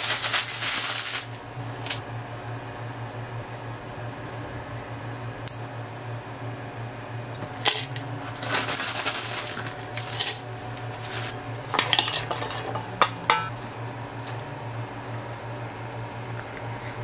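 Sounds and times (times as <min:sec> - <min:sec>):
leaves rustling: 0:00.0 - 0:01.4, 0:08.2 - 0:11.4
steady low hum: 0:00.0 - 0:17.0.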